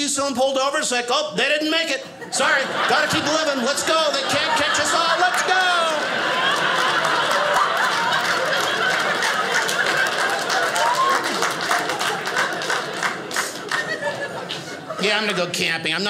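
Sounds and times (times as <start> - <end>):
audience laughing: 2.0 - 16.0
scattered clapping: 5.2 - 14.7.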